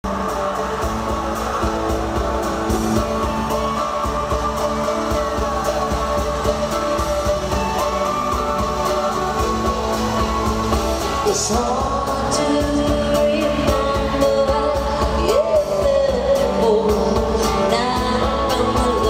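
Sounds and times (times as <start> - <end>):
drums keeping a steady beat: 0.0 - 19.0
electric guitars: 0.0 - 19.0.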